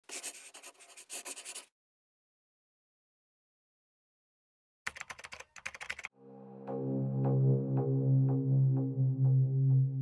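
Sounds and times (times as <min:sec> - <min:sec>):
computer keyboard typing clicks: 0:04.9 - 0:06.1.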